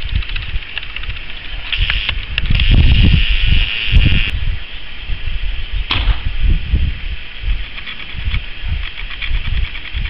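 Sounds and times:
wind buffeting microphone: 0.0s - 10.0s
air rifle shot: 5.9s - 6.4s.

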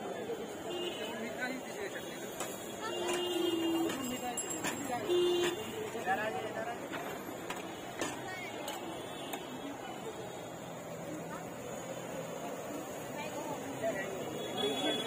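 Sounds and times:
people talking: 0.0s - 15.0s
metal utensils clinking: 2.4s - 6.0s.

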